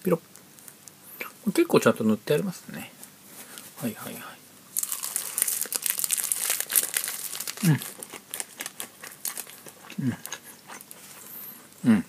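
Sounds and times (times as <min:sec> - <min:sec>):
plastic wrapper crinkling: 0:04.8 - 0:09.7.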